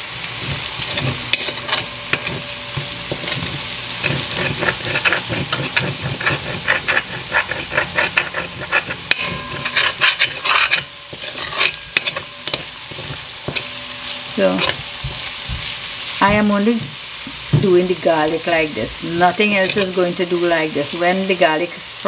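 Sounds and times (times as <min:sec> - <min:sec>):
garlic sizzling in oil: 0:00.0 - 0:22.0
spoon scraping a pot: 0:00.2 - 0:16.4, 0:19.1 - 0:20.5.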